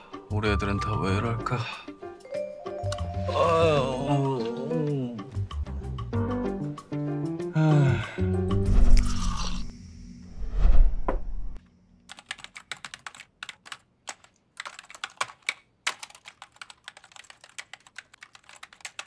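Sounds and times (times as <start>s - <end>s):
typing on laptop keyboard: 12.1s - 19.0s.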